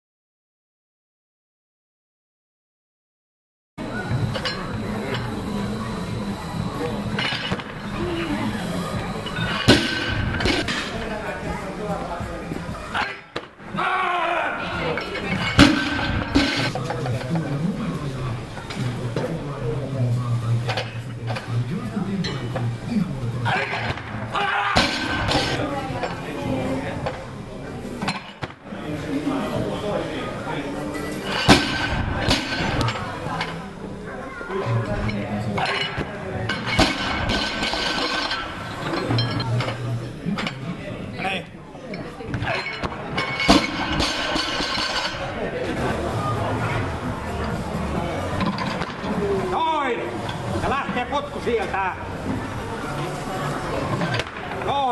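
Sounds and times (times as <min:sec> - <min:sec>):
voices in a hall: 0:03.8 - 0:54.9
barbell crashing onto platform: 0:24.8 - 0:25.6, 0:31.4 - 0:32.8.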